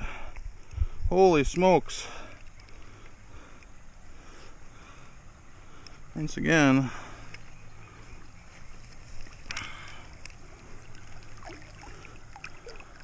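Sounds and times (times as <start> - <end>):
creek water running: 0.0 - 13.0
fish handled in landing net: 8.6 - 13.0.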